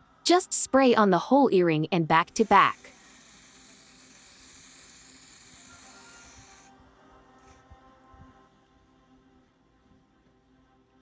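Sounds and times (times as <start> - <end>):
aerosol can spraying: 2.3 - 6.7.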